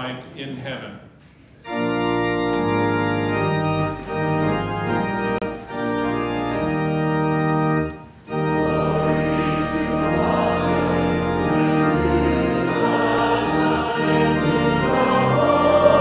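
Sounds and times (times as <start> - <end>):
church organ chords: 1.6 - 16.0.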